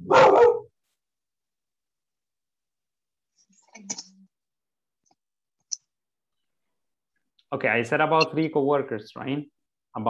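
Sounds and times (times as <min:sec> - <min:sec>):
dog barking: 0:00.0 - 0:00.8.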